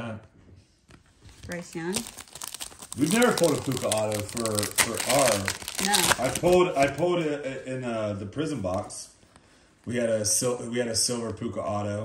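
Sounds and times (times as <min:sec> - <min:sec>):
foil wrapper crinkling: 0:01.3 - 0:07.2.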